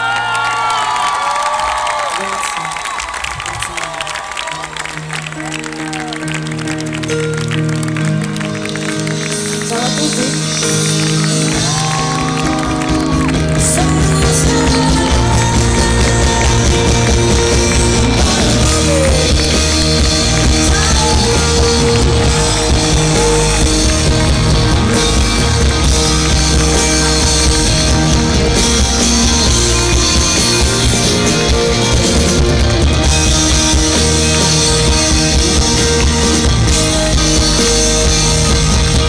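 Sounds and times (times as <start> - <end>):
crowd cheering and whooping: 0.0 - 9.2, 11.0 - 39.0
live band music: 3.3 - 39.0
keyboard chords: 3.6 - 39.0
bass and drums: 8.7 - 39.0.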